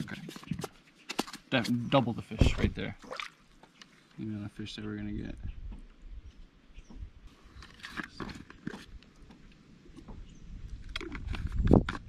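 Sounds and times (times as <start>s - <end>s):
loud thump: 2.4s - 2.8s
plastic bottle clicks and rustles: 10.8s - 12.0s.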